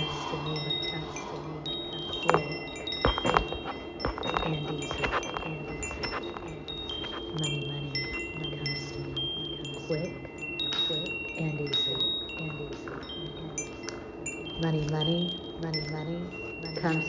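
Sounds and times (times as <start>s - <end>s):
chimes ringing: 0.0s - 17.0s
low hum: 0.0s - 17.0s.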